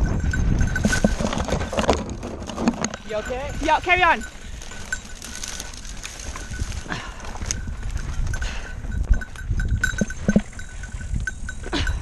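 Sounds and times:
bike rattling and knocking: 0.0s - 12.0s
rustling brush: 0.7s - 8.0s.

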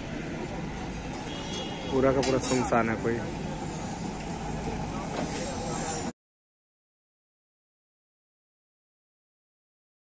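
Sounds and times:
market background rumble and hiss: 0.0s - 6.2s.

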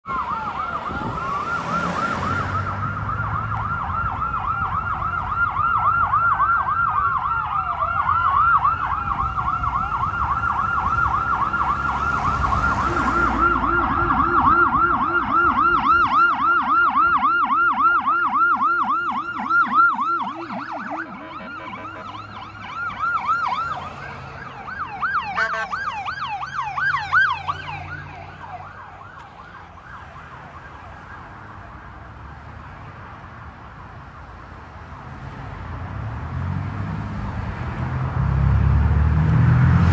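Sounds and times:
police siren yelp: 0.0s - 32.4s
siren wail sweeps: 0.0s - 32.5s, 36.6s - 39.9s
passing traffic: 0.0s - 39.9s.

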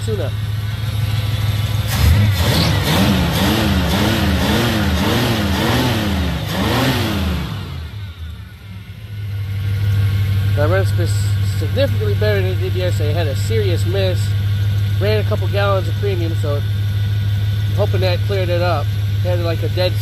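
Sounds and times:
person talking: 0.0s - 0.4s, 10.6s - 14.3s, 15.0s - 16.6s, 17.7s - 20.0s
car engine revving: 0.0s - 20.0s.

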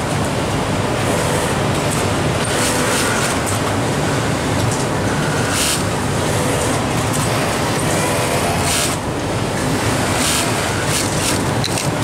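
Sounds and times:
industrial sewing machines running: 0.0s - 12.0s.

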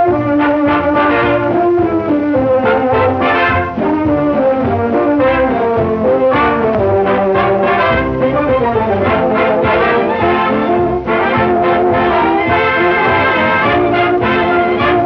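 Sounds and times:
brass-led orchestral music: 0.0s - 15.0s.

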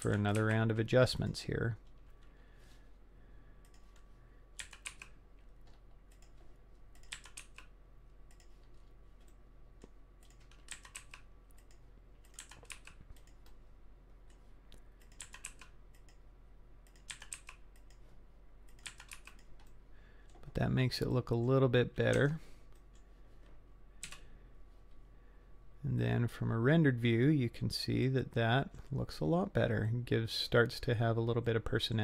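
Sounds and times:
faint keyboard keystrokes: 8.3s - 13.6s.

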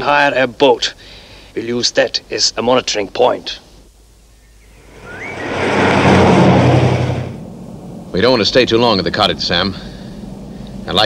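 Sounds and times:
car driving past: 4.7s - 8.1s.

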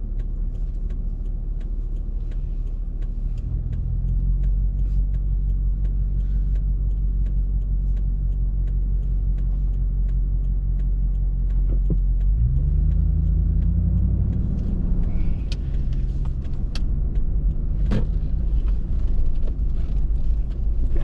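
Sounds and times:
car engine idling: 0.0s - 21.0s
turn signal ticking: 0.0s - 21.0s.

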